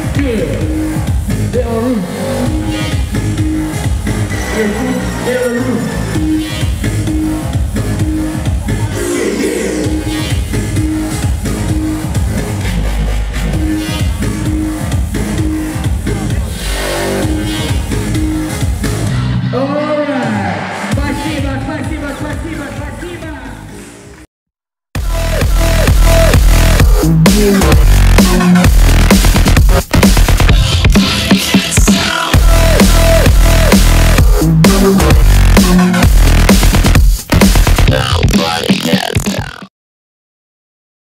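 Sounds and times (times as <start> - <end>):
heavy bass line: 0.0 - 24.0, 25.0 - 39.7
electronic dance music: 0.0 - 24.2, 25.0 - 39.7.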